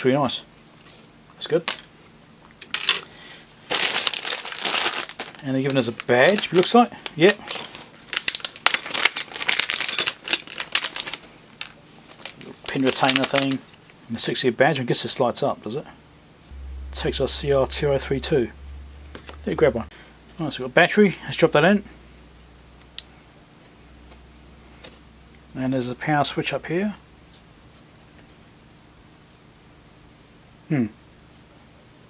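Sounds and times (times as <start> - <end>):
plastic bag crinkling: 3.7 - 6.7, 7.4 - 13.6
low steady hum: 16.5 - 30.4.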